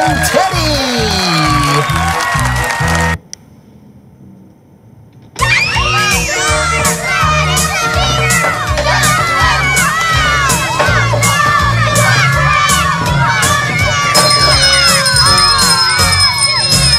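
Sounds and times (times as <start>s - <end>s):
children shouting and cheering: 0.0s - 3.2s, 5.4s - 16.9s.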